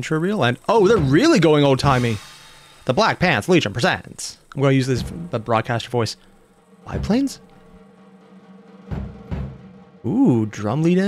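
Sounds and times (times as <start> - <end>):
held music tone: 0.6 - 11.0
low drum hits: 0.8 - 2.7, 4.9 - 5.6, 6.4 - 10.6.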